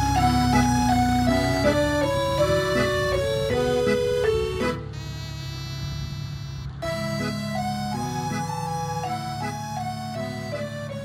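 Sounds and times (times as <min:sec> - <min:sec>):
background music: 0:00.0 - 0:05.0, 0:06.8 - 0:11.0
tractor engine humming: 0:00.0 - 0:11.0.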